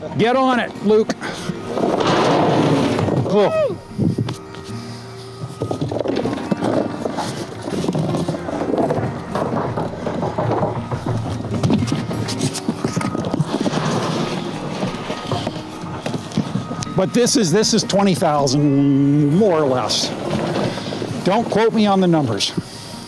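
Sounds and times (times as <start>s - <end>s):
background music: 0.0s - 23.0s
flower bulbs clattering: 0.2s - 22.6s.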